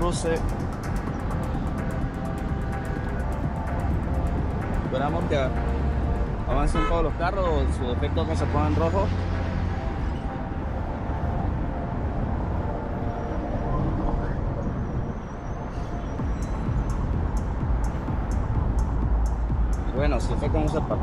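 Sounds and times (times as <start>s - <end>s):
background music: 0.0s - 21.0s
street traffic: 0.0s - 21.0s
wind rumble on microphone: 0.0s - 21.0s.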